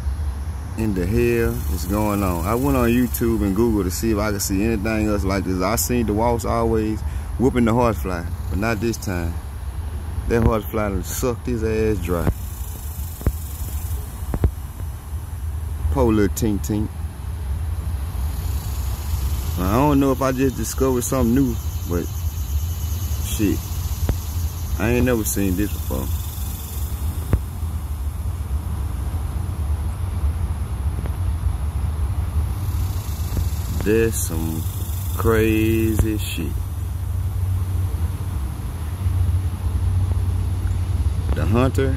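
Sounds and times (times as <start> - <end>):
steady low rumble: 0.0 - 41.9
vehicle engine idling: 0.0 - 41.9.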